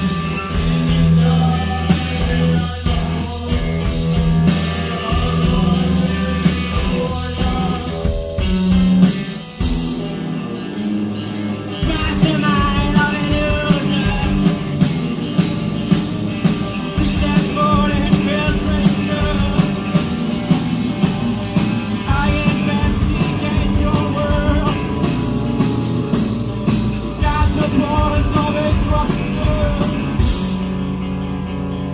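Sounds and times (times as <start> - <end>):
bass guitar: 0.0 - 31.9
drums and cymbals: 0.0 - 31.9
electric guitars: 0.0 - 31.9.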